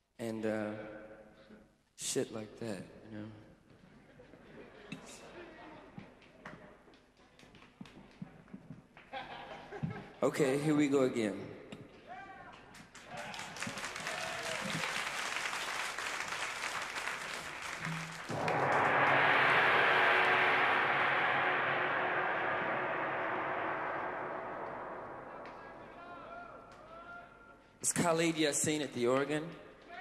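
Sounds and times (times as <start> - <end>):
audience applause: 12.9 - 18.3
gong stroke ringing: 17.8 - 26.3
low hum: 17.8 - 26.9.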